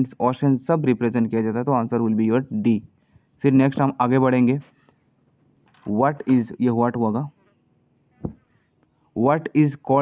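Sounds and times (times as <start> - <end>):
man speaking: 0.0 - 4.8, 5.8 - 7.4, 9.1 - 10.0.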